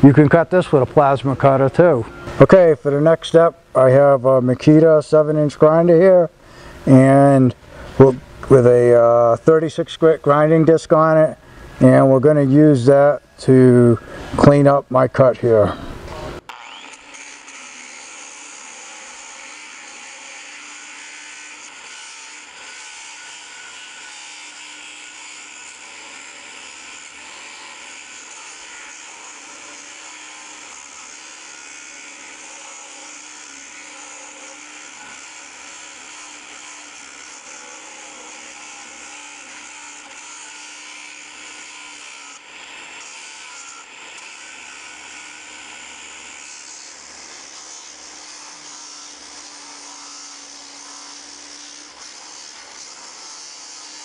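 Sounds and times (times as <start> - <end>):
angle grinder grinding steel: 0.0 - 54.0.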